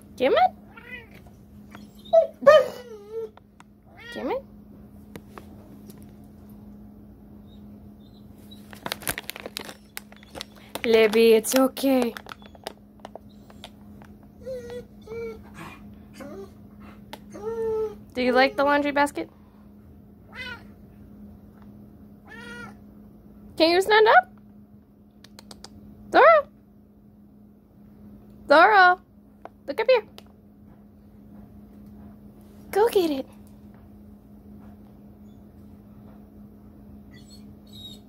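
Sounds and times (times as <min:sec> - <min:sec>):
steady low hum: 0:00.0 - 0:38.0
cat meowing: 0:00.7 - 0:01.2, 0:03.9 - 0:04.3, 0:20.3 - 0:20.7, 0:22.2 - 0:22.8.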